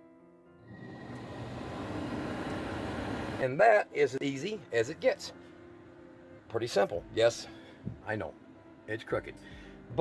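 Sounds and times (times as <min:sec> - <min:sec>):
furnace blower rushing air: 0:00.6 - 0:03.5.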